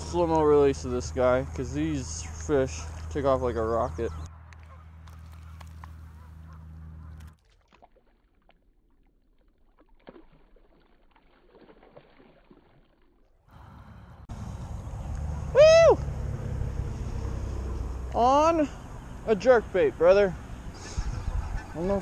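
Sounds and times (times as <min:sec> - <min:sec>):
low outdoor rumble: 0:13.5 - 0:22.0.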